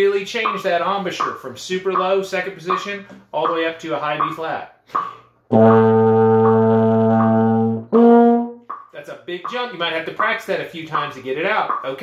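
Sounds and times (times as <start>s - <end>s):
euphonium notes: 5.5s - 8.9s.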